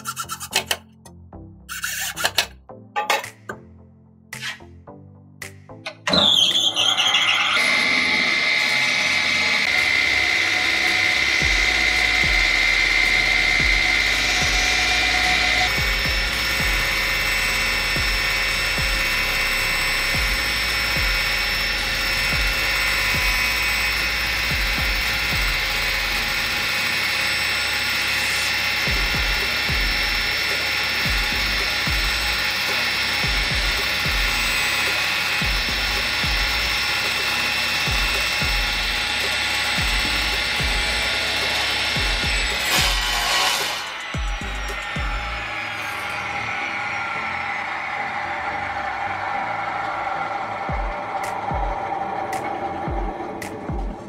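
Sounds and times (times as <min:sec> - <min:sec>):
table saw motor whine: 0:05.9 - 0:54.0.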